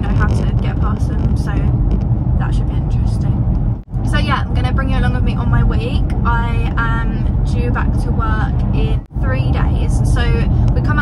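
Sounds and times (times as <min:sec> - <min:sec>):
woman talking: 0:00.0 - 0:01.8, 0:02.4 - 0:11.0
car road and engine rumble: 0:00.0 - 0:11.0.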